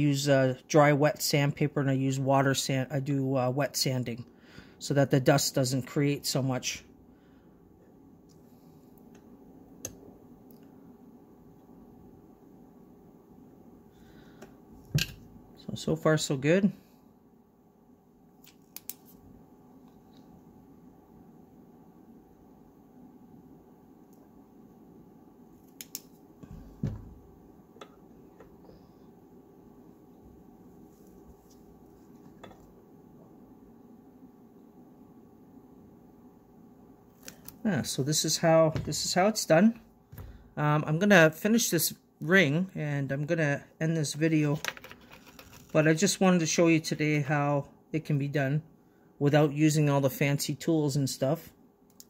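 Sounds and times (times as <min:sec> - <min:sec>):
faint steady hum: 0:00.0 - 0:52.0
quiet room noise: 0:00.0 - 0:52.0
soft thump: 0:26.5 - 0:27.2.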